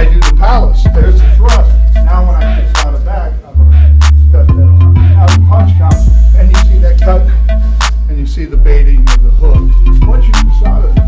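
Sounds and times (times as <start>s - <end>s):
rapping over hip-hop beat: 0.0s - 11.0s.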